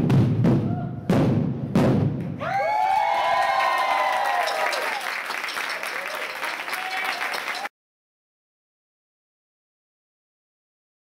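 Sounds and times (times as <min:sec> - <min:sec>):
marching bass drums struck: 0:00.0 - 0:02.4
audience cheering and applauding: 0:02.4 - 0:07.7.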